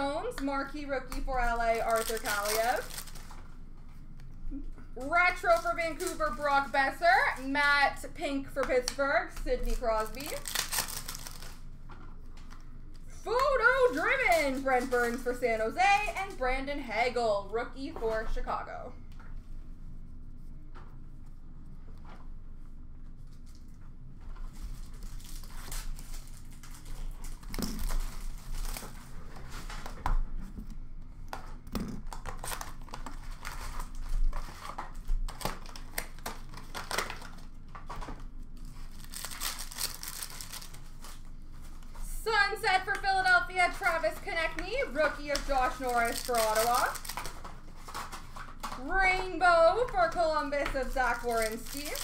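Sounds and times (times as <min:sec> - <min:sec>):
wrappers crinkling and tearing: 0:00.6 - 0:03.5, 0:05.0 - 0:07.9, 0:08.6 - 0:16.5, 0:23.2 - 0:30.0, 0:32.0 - 0:52.0.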